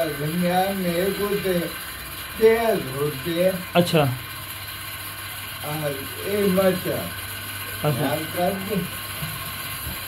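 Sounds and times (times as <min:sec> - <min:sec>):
steady mechanical noise: 0:00.0 - 0:10.0
man talking: 0:07.8 - 0:08.9.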